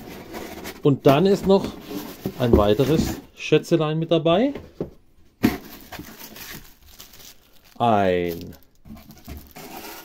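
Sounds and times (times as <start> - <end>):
cardboard and plastic handling noise: 0.0 - 3.3, 4.3 - 10.0.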